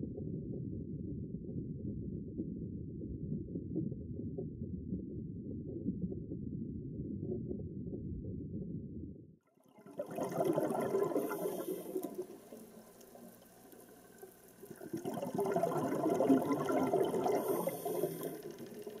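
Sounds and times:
water bubbling underwater: 0:09.7 - 0:19.0.

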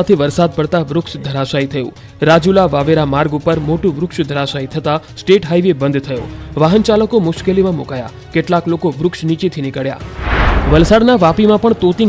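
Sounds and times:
booming whoosh: 0:10.0 - 0:11.1.

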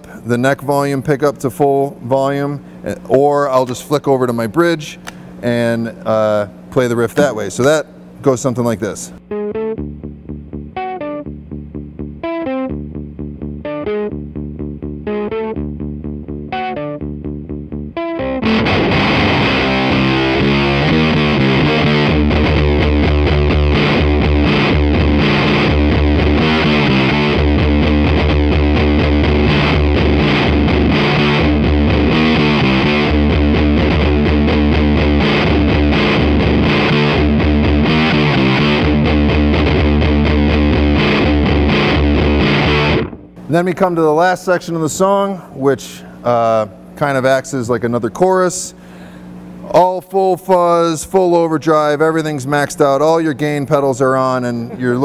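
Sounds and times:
fuzz electric guitar riff: 0:09.2 - 0:44.2.

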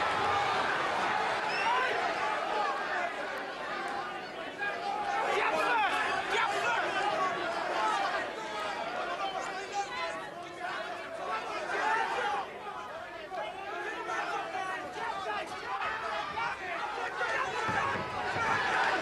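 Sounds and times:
crowd shouting: 0:00.0 - 0:19.0.

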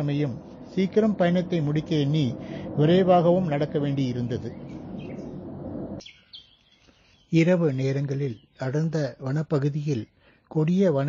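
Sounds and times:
outdoor background noise: 0:00.0 - 0:11.0
high bird chirps: 0:04.4 - 0:07.4.

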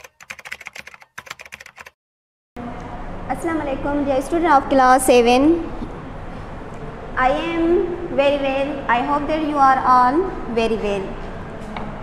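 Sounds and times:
keyboard typing clicks: 0:00.0 - 0:01.9.

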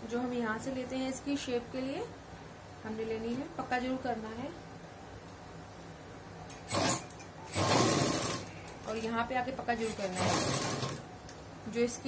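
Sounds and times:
sewing machine stitching: 0:06.5 - 0:09.1, 0:09.8 - 0:11.0.

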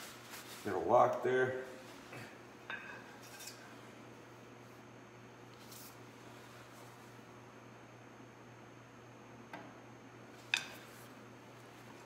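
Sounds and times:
faint brushing: 0:00.0 - 0:00.9.

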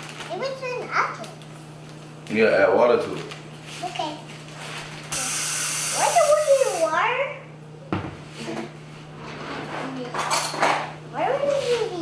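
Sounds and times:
child's voice: 0:00.3 - 0:01.4, 0:03.8 - 0:04.3, 0:06.0 - 0:07.5, 0:11.2 - 0:12.0.

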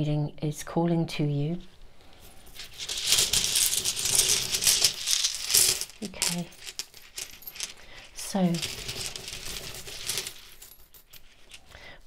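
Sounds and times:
stones clattering in a pouch: 0:02.3 - 0:11.7.

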